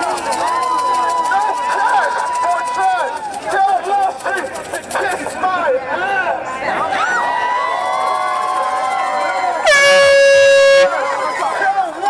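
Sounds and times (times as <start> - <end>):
crowd shouting and chanting: 0.0 - 12.0
loud horn blast: 9.6 - 11.3.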